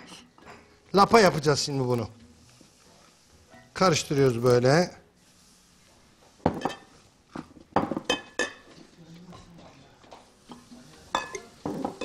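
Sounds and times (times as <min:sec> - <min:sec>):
wooden spoon stirring thick paste: 0:00.9 - 0:06.4.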